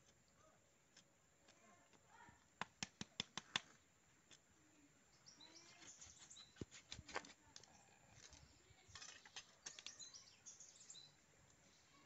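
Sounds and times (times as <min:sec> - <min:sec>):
faint bird chirps: 0:04.7 - 0:06.8, 0:07.6 - 0:12.0.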